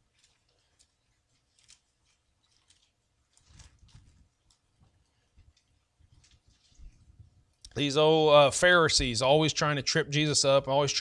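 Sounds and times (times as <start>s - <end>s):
pages being turned: 0.0s - 7.0s.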